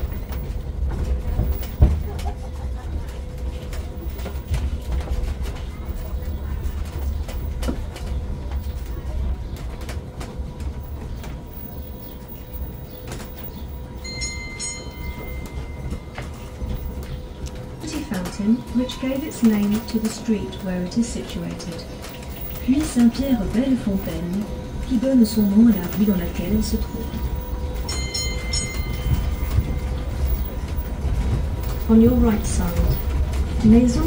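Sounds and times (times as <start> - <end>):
carriages rattling and knocking: 0.0 - 34.0
road train rumbling over cobblestones: 0.0 - 34.0.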